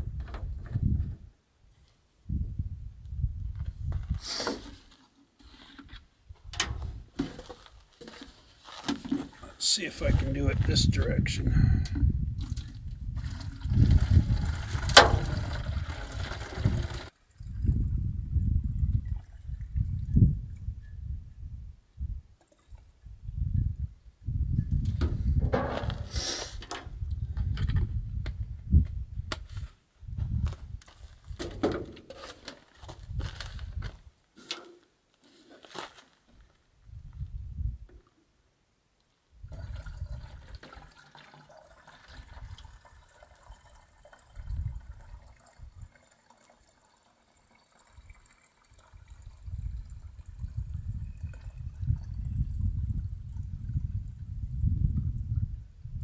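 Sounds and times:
plastic jugs clicking and knocking: 0:06.5 - 0:09.6, 0:24.9 - 0:27.8, 0:31.3 - 0:33.1, 0:39.5 - 0:42.6
water glugging from a jug: 0:08.8 - 0:10.3, 0:11.6 - 0:20.7, 0:39.4 - 0:55.2.

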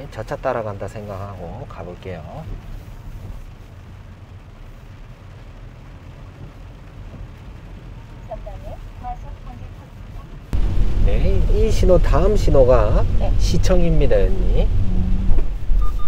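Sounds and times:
car engine rumble: 0:00.0 - 0:16.0
tyres on wet road: 0:00.0 - 0:16.0.

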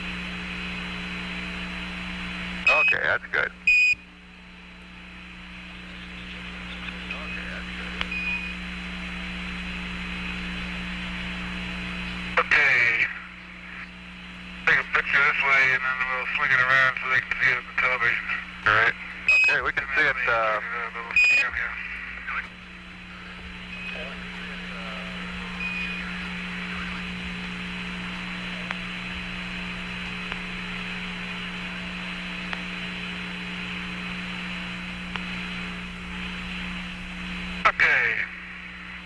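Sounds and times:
low hum: 0:00.0 - 0:39.0
garbled radio voice: 0:02.7 - 0:03.6, 0:12.4 - 0:14.0, 0:14.6 - 0:27.3, 0:37.6 - 0:38.5
radio channel hiss: 0:02.7 - 0:03.6, 0:05.5 - 0:08.1, 0:09.4 - 0:39.0.

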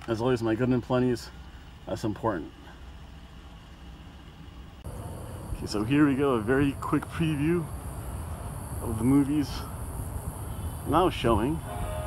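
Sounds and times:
car engine idling: 0:00.0 - 0:12.0
hissy background noise: 0:00.3 - 0:12.0.

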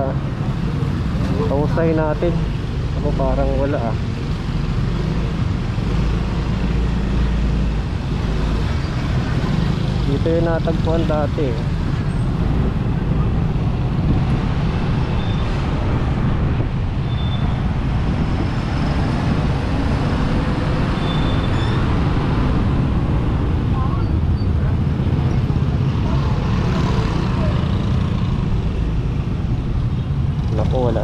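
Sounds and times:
passing vehicles: 0:00.0 - 0:31.0.

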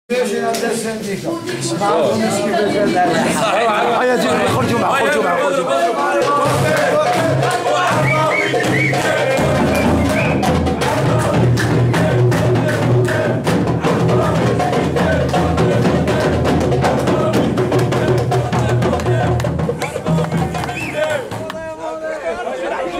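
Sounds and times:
crowd talking: 0:00.1 - 0:22.9
men singing and shouting: 0:00.1 - 0:22.9
frame drum beating fast: 0:05.9 - 0:21.8.

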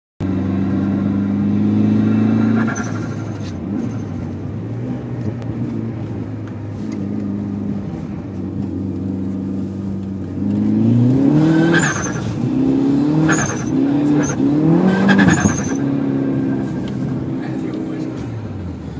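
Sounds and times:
car engine revving: 0:00.2 - 0:18.9.

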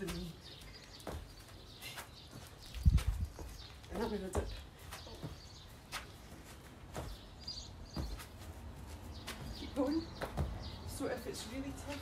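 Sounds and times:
bird chirping: 0:00.0 - 0:12.0
soft thumps on grass: 0:10.2 - 0:10.7.

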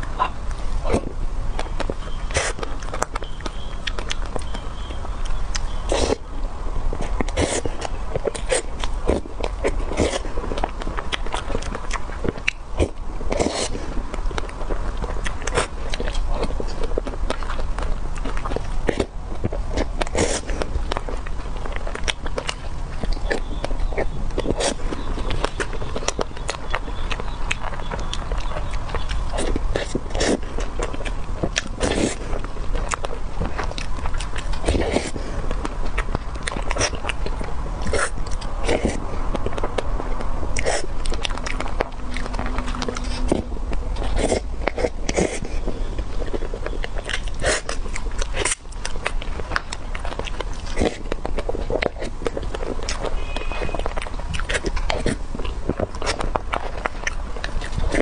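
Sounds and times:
wet mouth smacks and chewing: 0:00.0 - 0:06.3, 0:07.0 - 0:58.0.

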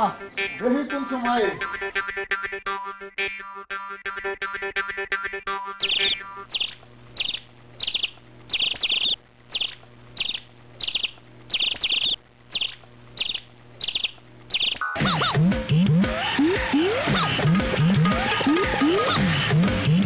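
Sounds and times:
music: 0:00.0 - 0:06.5, 0:14.9 - 0:20.0
low steady hum: 0:05.6 - 0:14.8
bird chirping: 0:05.8 - 0:14.9.

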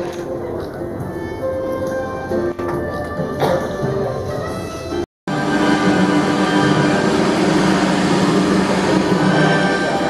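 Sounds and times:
ambient music with held tones: 0:00.0 - 0:10.0.

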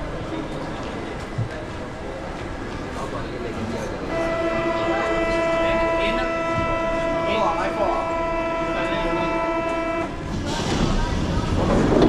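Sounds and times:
platform chatter: 0:00.0 - 0:12.0
station noise: 0:04.0 - 0:12.0.

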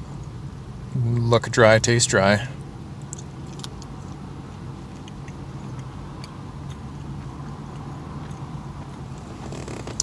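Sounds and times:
steady low hum: 0:00.0 - 0:10.0
chewing crunchy bar: 0:03.0 - 0:10.0.

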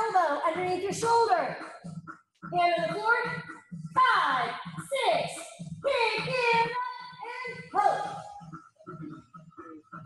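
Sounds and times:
steady low beat: 0:00.0 - 0:10.0.

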